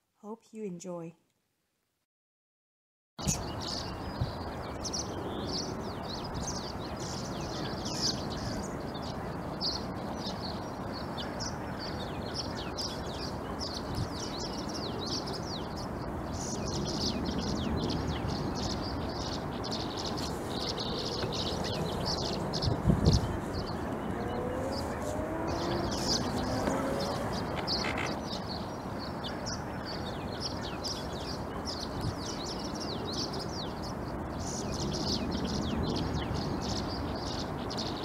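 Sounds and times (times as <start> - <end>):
outdoor background hiss: 3.2 - 38.0
small birds chirping: 3.2 - 38.0
low gliding bird calls: 10.5 - 31.8.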